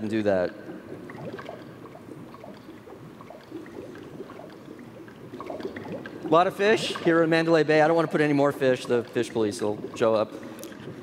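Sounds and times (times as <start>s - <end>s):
water bubbling and gurgling: 0.0s - 11.0s.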